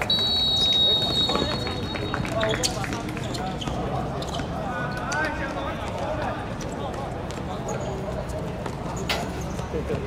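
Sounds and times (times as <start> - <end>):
referee's whistle blast: 0.0 - 2.3.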